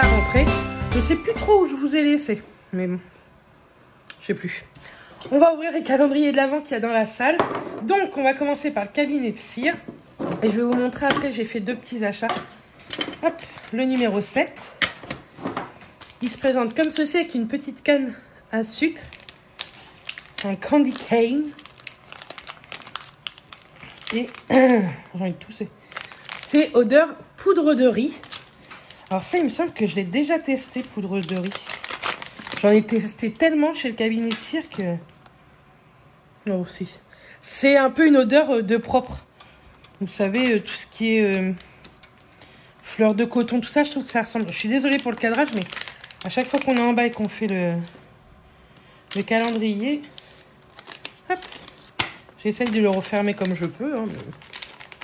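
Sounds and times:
wrapper crinkling: 12.8s - 17.7s, 18.7s - 24.7s, 25.8s - 26.8s, 27.9s - 33.4s, 39.4s - 48.1s, 49.0s - 55.0s.

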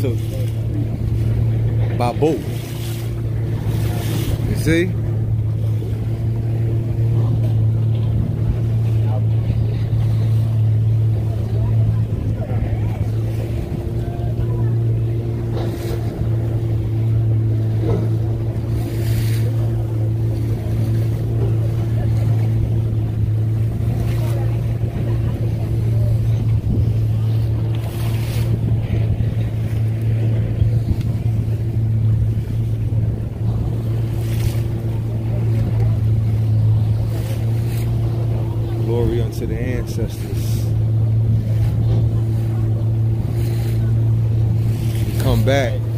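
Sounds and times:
outboard motor running: 0.0s - 45.9s
water splashing against hull: 0.0s - 45.9s.

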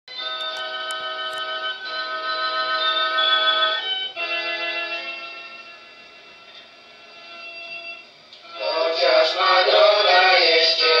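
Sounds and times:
electronic organ chord: 0.1s - 11.0s.

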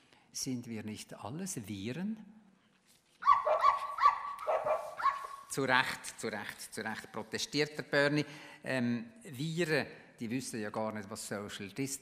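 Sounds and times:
dog barking high: 3.2s - 5.5s.

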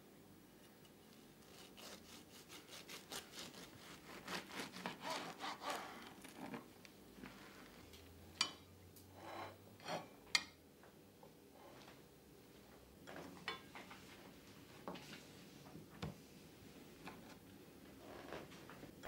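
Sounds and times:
knife sawing through sandwich: 1.4s - 6.2s.

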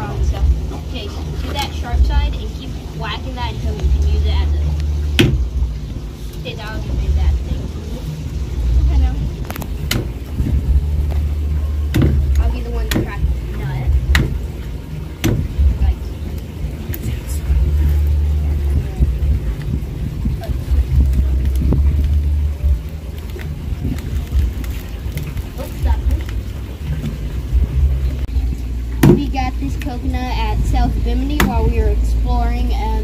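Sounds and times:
steady low rumble: 0.0s - 33.0s
voices: 0.0s - 33.0s
hammer striking coconut: 5.2s - 5.4s, 11.9s - 13.2s, 14.1s - 14.4s, 15.2s - 15.5s, 29.0s - 29.3s, 31.4s - 31.6s.

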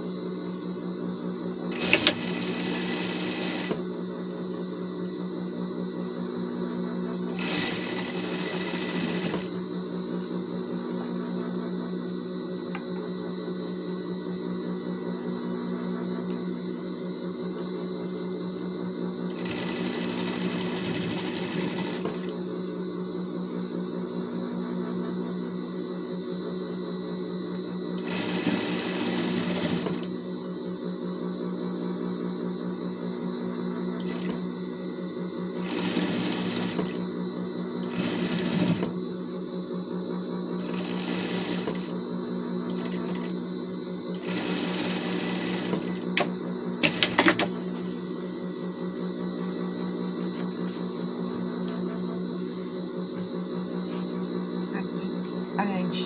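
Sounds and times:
sewing machine stitching: 1.7s - 3.8s, 7.3s - 9.5s, 19.3s - 22.3s, 28.0s - 30.1s, 34.0s - 34.4s, 35.6s - 37.0s, 37.8s - 39.0s, 40.6s - 42.0s, 42.7s - 43.3s, 44.1s - 47.5s.

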